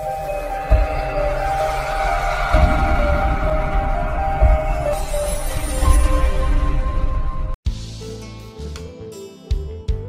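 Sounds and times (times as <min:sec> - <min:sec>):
low rumble: 0:00.6 - 0:07.6
deep boom: 0:00.7 - 0:07.6.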